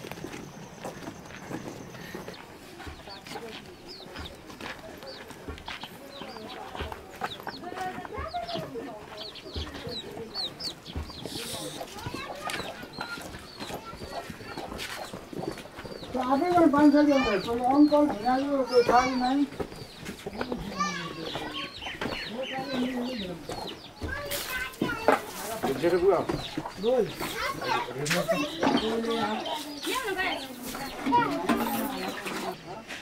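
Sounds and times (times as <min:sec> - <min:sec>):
chickens clucking: 0:00.0 - 0:33.0
footsteps on dirt path: 0:00.0 - 0:33.0.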